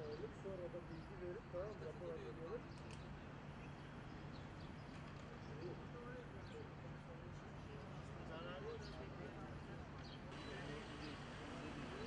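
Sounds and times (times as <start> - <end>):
distant voices: 9.6 - 12.0.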